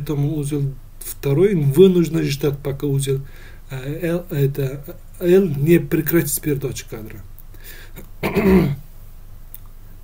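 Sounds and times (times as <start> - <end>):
person clearing throat: 8.2 - 8.9.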